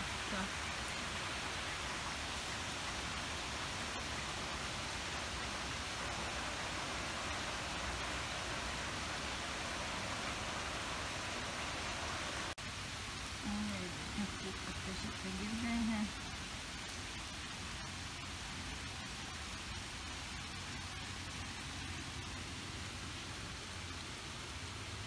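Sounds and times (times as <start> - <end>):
heavy rain on trees and lawn: 0.0 - 25.0.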